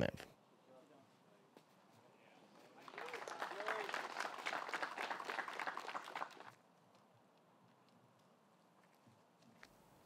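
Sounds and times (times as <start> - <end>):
faint applause: 2.6 - 6.6.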